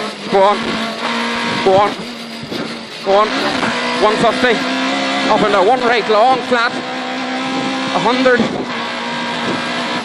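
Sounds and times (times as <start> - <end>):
car engine running hard: 0.0 - 10.0.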